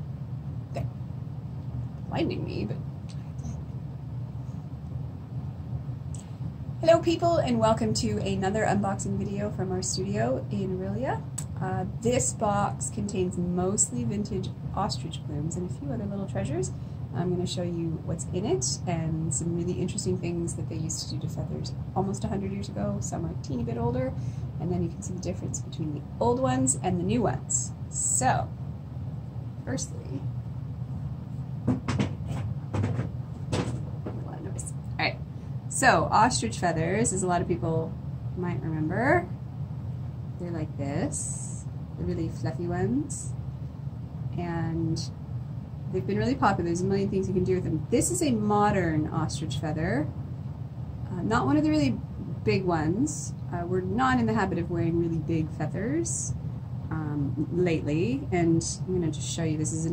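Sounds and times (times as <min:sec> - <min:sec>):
low background rumble: 0:00.0 - 0:59.9
steady low hum: 0:00.0 - 0:59.9
plastic box knocks and rustles: 0:31.6 - 0:34.3.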